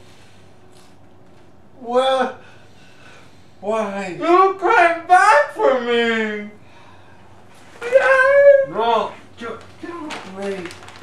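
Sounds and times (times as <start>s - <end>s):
man wailing wordlessly: 1.8s - 2.4s, 7.8s - 9.2s.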